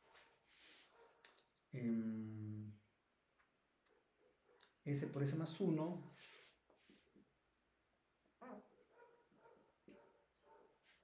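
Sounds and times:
marker squeaking on whiteboard: 9.9 - 11.0.

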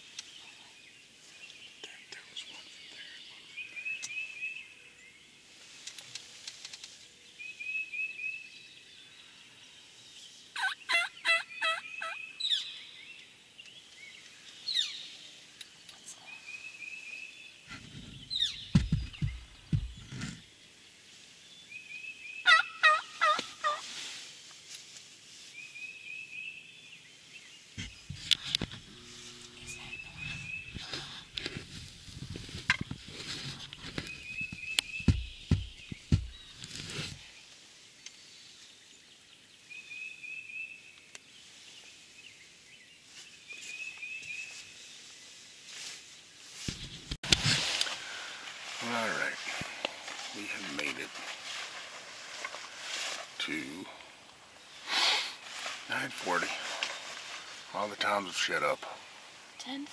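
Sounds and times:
turkey yelping: 10.6 - 12.2, 22.4 - 23.8
low thumps and rustles: 17.7 - 20.4, 27.8 - 29.5, 30.1 - 37.2, 46.5 - 48.8.

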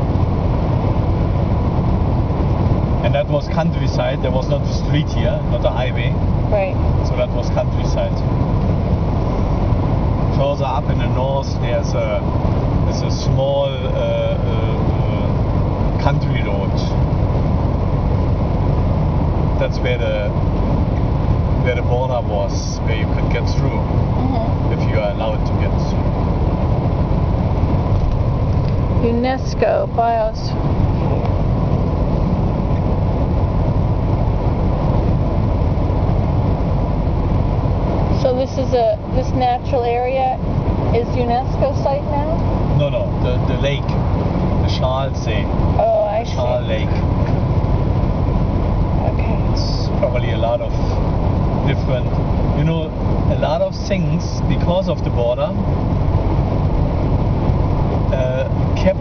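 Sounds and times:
car road noise rumble: 0.0 - 59.0.

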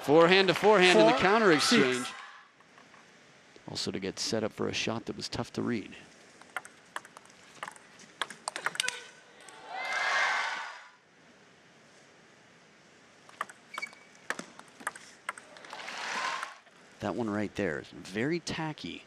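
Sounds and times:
crowd cheering: 0.0 - 2.4, 8.8 - 11.0, 15.5 - 16.6
person shouting: 0.9 - 2.2
table tennis ball clicks: 6.4 - 9.6, 13.3 - 15.8.

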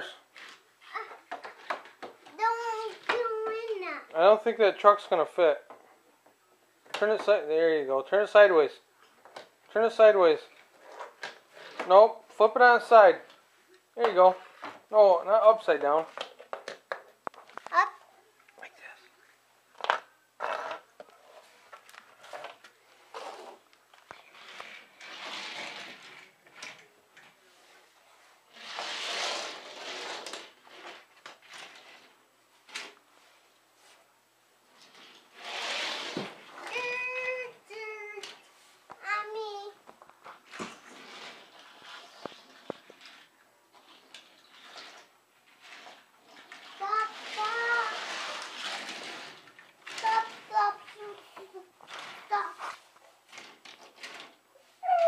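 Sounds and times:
scraping on hardwood floor: 9.3 - 12.9, 19.8 - 26.8, 27.6 - 32.1, 34.8 - 37.0, 39.9 - 54.3
toy cars clicking: 28.5 - 32.1, 41.0 - 51.2.

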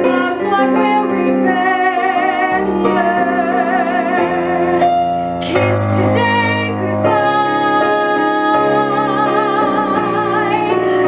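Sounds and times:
piano: 0.0 - 11.0
woman singing with vibrato: 0.0 - 11.0.

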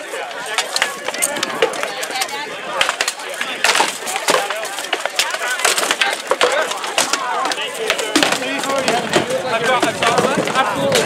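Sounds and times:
background voices: 0.0 - 11.0
weapons knocking on wooden shields: 0.4 - 11.0.

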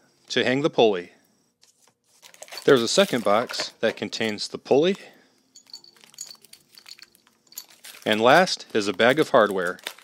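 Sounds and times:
metal hardware clinking: 2.4 - 4.4, 5.6 - 8.5.

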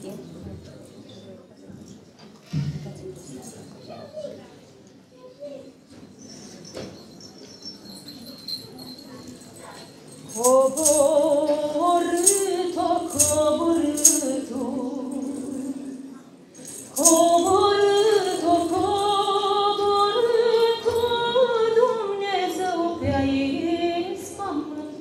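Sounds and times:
woman singing a carol: 10.3 - 25.0.

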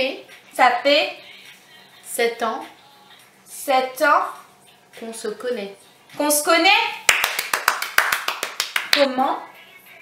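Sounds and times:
hands clapping quickly: 7.1 - 9.1.

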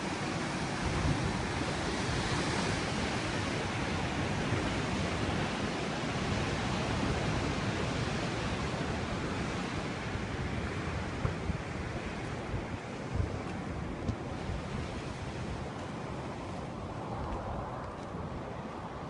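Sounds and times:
wind: 0.0 - 19.0.

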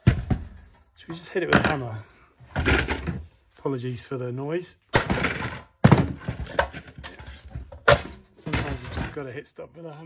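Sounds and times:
metal clanking and rattling: 5.0 - 9.3.

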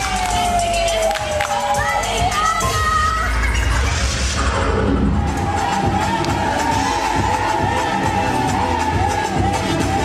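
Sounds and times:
crowd cheering and shouting: 0.0 - 10.0
dance music with bass beat: 0.0 - 10.0.

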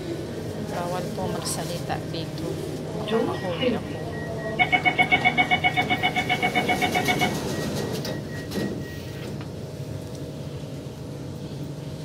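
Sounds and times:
faint steady whine: 0.0 - 12.0
train carriage rumble: 0.0 - 12.0.

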